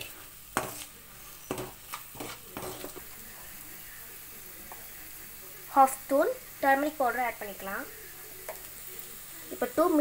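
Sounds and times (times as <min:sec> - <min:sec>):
metal spoon scraping a pan: 0:00.0 - 0:03.6
food sizzling in a pan: 0:00.0 - 0:10.0.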